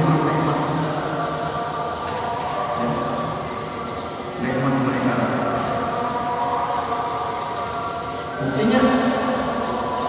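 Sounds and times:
man singing long held tones: 0.0s - 10.0s.

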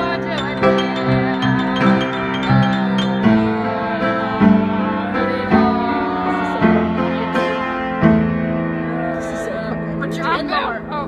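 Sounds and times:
person singing: 0.0s - 8.0s
piano chords: 0.0s - 11.0s.

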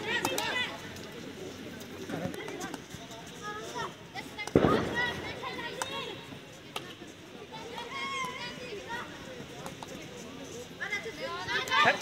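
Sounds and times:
players calling and shouting: 0.0s - 12.0s.

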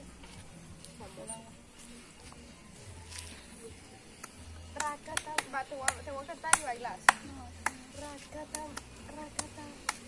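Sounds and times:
sharp hand claps: 4.2s - 10.0s.

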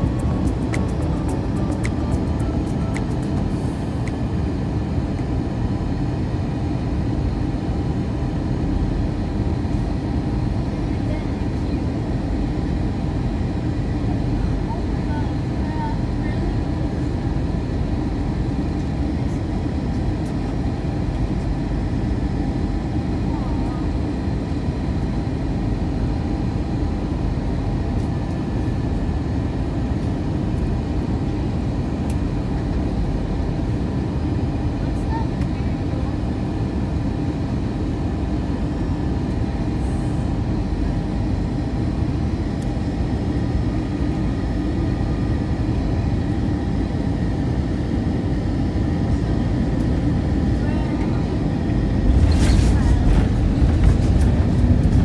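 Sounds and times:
low rumble of airflow and engines: 0.0s - 55.0s.

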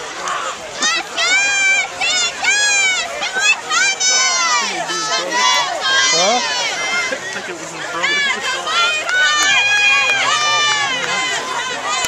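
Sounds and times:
spectators shouting and cheering: 0.0s - 12.0s.

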